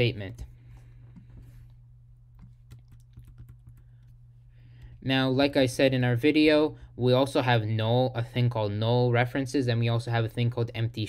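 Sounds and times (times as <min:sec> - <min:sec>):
computer keyboard keystrokes: 0:02.4 - 0:04.1.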